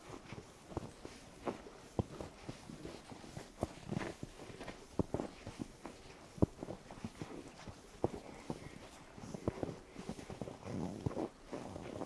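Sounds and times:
footsteps crunching in snow: 0.0s - 12.0s.

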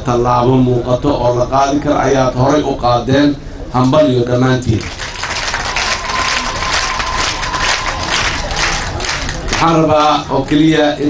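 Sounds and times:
audience applauding: 4.8s - 10.7s.

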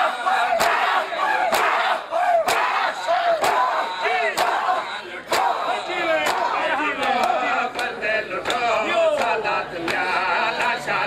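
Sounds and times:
crowd shouting and chanting: 0.0s - 11.0s.

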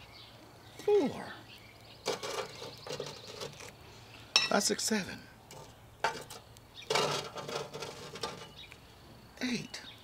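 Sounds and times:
charcoal scraping clatter: 2.0s - 3.8s, 5.5s - 8.7s.

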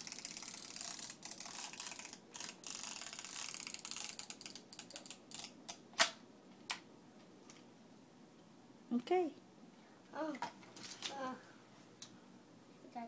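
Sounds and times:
plastic toy watch clicking: 0.0s - 5.5s.

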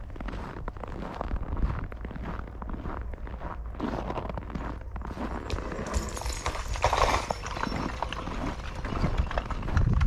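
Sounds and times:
footsteps crunching on snow: 0.0s - 9.9s.

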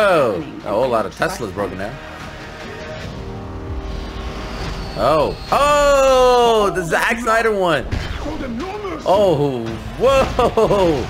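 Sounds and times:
dialogue speech: 0.0s - 2.0s, 5.0s - 11.0s
held drone tone: 3.4s - 6.9s.

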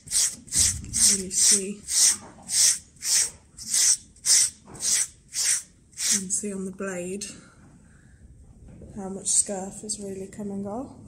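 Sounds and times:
grooming blade rasping on horse coat: 0.0s - 6.3s.

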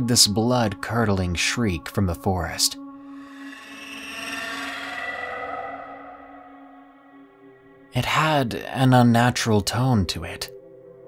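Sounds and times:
ambient music drone: 0.0s - 8.9s.

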